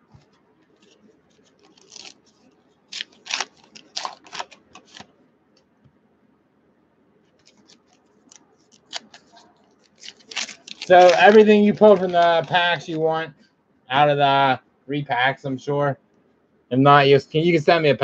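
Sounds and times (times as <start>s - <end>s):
card packs crackling and rustling: 0.8s - 5.1s, 7.4s - 13.0s.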